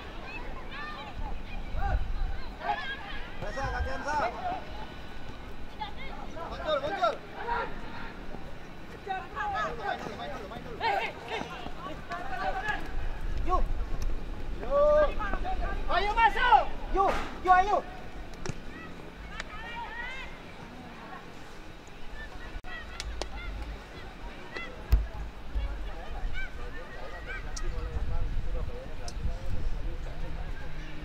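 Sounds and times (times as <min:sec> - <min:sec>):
distant shouting voices: 0:00.0 - 0:28.1.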